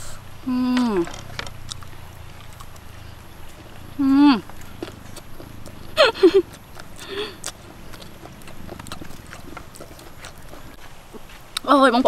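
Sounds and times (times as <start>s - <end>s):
chewing clicks: 1.0s - 10.8s.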